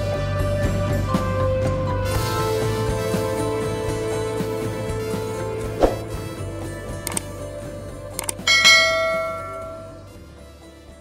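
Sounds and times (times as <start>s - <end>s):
button clicks: 8.2s - 10.0s
bright bell chime: 8.4s - 10.1s.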